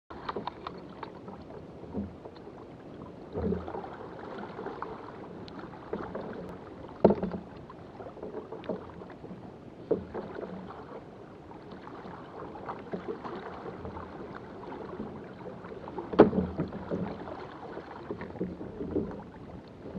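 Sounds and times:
water lapping against a hull: 0.1 - 19.9
sharp knocks on a hull: 7.0 - 7.5, 16.0 - 19.3.

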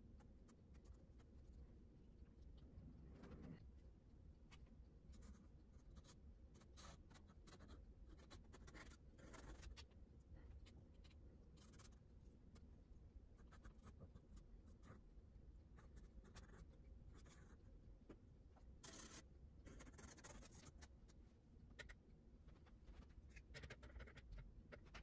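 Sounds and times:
pencil scratching on paper: 5.1 - 9.9, 10.6 - 12.6, 13.4 - 15.0, 15.8 - 17.6, 18.8 - 21.0, 21.8 - 25.0.

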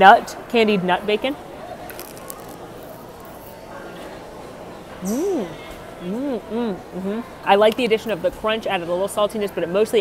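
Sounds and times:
busy indoor space background noise: 0.0 - 10.0
faint distant voices: 0.0 - 10.0.

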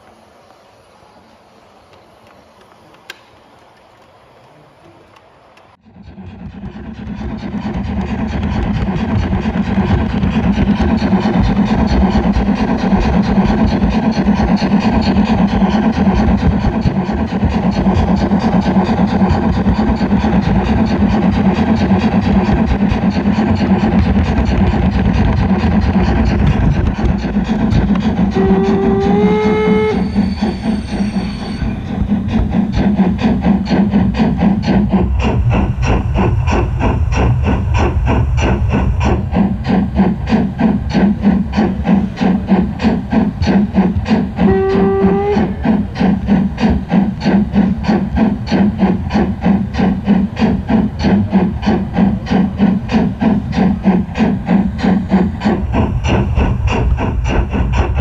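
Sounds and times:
model train running clicking: 0.0 - 58.0
train whistle: 28.2 - 31.9, 44.4 - 45.6.

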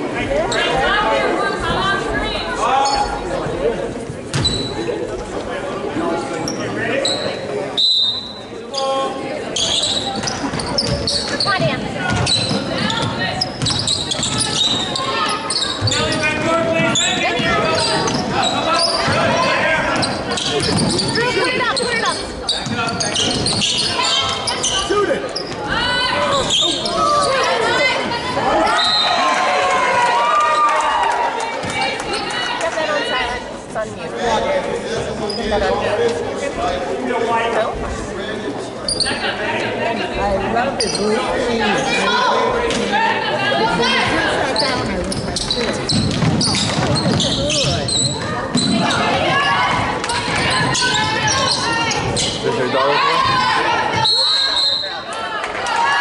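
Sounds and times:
referee's whistle: 7.1 - 8.4, 28.8 - 29.2, 54.0 - 55.1
people calling out: 40.9 - 56.0.

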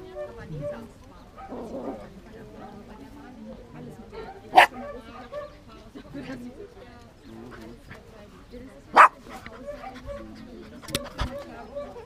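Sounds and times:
faint voices: 0.0 - 12.0
puppy barking: 4.2 - 5.6, 8.9 - 10.3.

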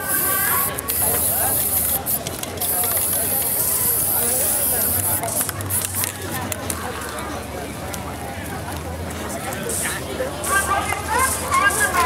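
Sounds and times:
spray paint can hissing: 0.0 - 6.1.

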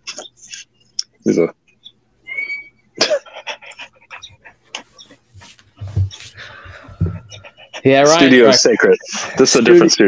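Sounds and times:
dog panting: 3.6 - 7.9.

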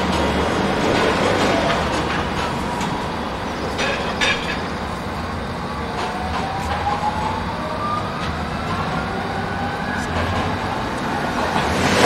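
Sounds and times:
low tram running noise: 0.0 - 12.0
tram motors whining: 0.0 - 12.0.

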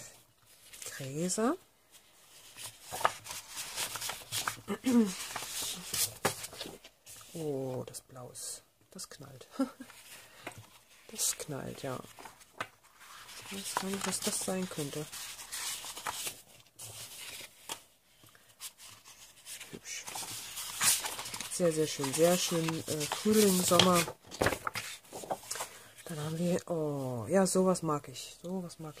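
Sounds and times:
paper rustling: 1.8 - 7.4, 9.8 - 27.1.

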